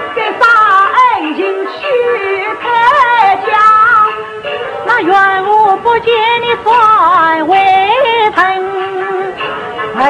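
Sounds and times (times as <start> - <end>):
opera singing with vibrato: 0.0 - 4.2, 4.8 - 9.4.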